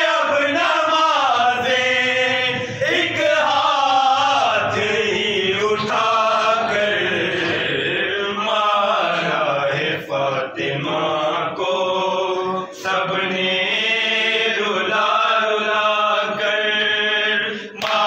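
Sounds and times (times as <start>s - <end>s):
men chanting a lament: 0.0s - 18.0s.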